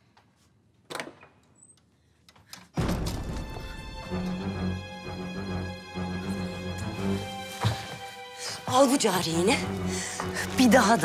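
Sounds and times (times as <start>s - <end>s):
dramatic score music: 2.8s - 11.0s.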